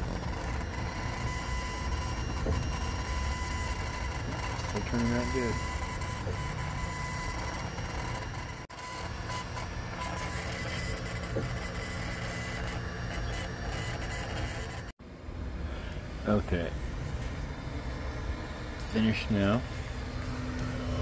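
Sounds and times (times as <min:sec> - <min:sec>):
laser engraver motors whirring: 0:00.0 - 0:14.9, 0:17.4 - 0:21.0
thin steady whine: 0:00.0 - 0:21.0.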